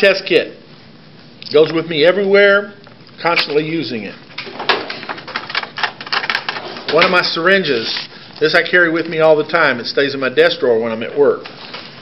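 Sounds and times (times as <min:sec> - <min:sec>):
clicks and plastic rattles: 0:04.4 - 0:07.2.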